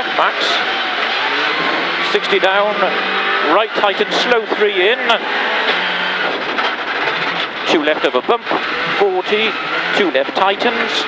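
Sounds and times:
rally car engine running hard: 0.0s - 11.0s
gravel clattering against car underside: 5.7s - 8.6s.

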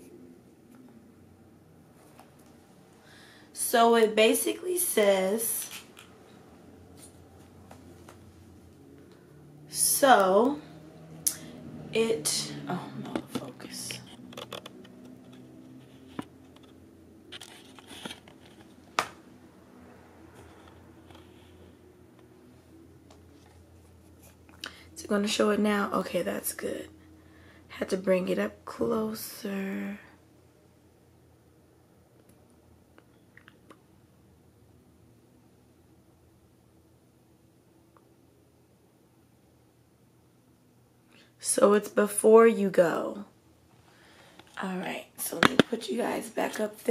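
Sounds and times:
faint steady hum: 0.0s - 46.9s.

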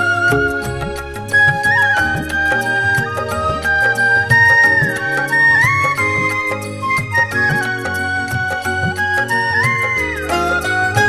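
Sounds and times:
high gliding melody line: 0.0s - 11.0s
steady percussion beat: 0.0s - 11.0s.

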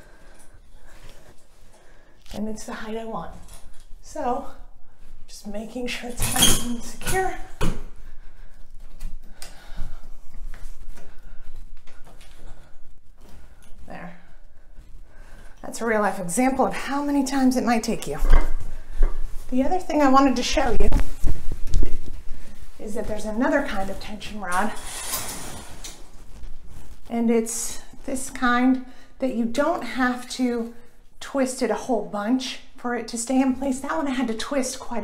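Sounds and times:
shower curtain rustling: 18.3s - 27.1s.

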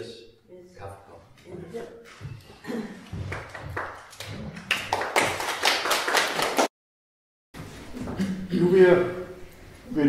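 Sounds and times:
small audience applauding: 3.0s - 6.7s.

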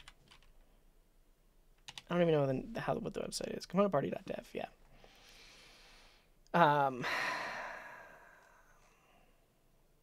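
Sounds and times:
man sighing: 6.6s - 9.2s.

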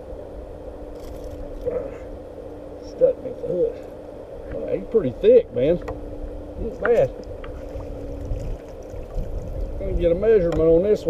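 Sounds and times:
faint steady hum: 0.0s - 11.0s
man talking: 6.6s - 7.2s, 9.8s - 11.0s
water rumbling around kayak: 7.2s - 10.2s.

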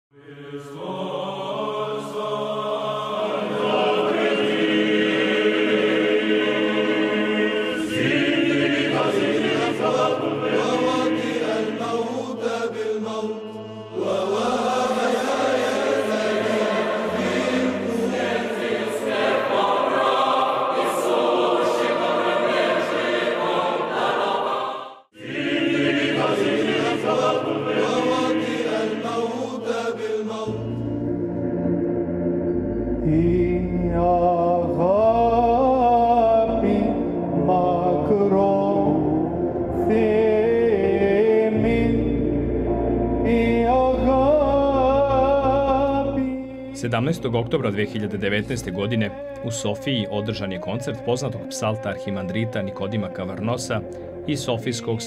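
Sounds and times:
choir chanting: 0.1s - 46.3s
low drone: 16.1s - 47.6s.

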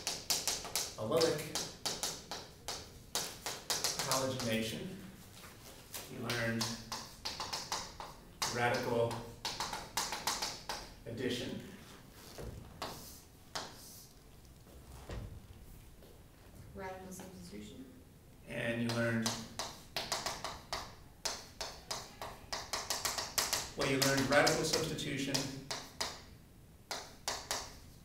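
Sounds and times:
chalk tapping and scraping on chalkboard: 0.0s - 4.8s, 5.7s - 11.0s, 11.8s - 14.1s, 18.8s - 26.3s, 26.9s - 28.0s
chalk strokes on chalkboard: 11.8s - 14.1s.

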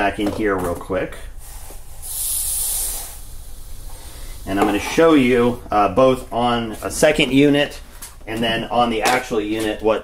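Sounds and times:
hiss of pouring granules: 1.4s - 4.9s.

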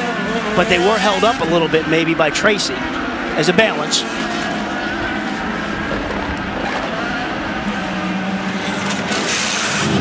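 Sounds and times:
drone of race cars: 0.0s - 10.0s
race car engine at low revs: 0.0s - 10.0s.

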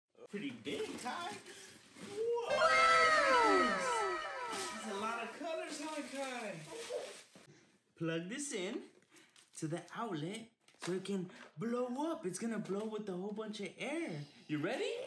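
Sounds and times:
children's voices saying wow: 2.3s - 5.4s.

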